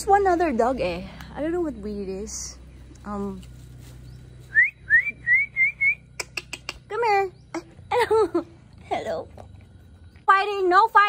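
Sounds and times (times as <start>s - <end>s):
person whistling short rising notes: 4.5s - 6.2s.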